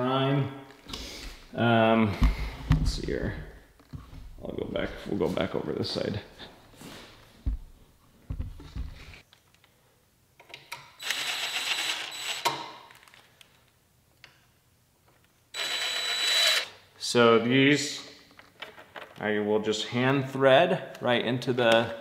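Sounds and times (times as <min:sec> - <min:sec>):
power screwdriver running: 0:11.0 - 0:12.5, 0:15.6 - 0:16.7.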